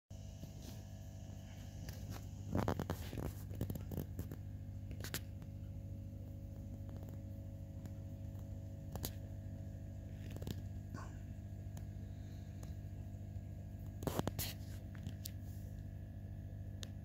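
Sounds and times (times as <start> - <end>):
steady low hum: 0.1 - 17.0.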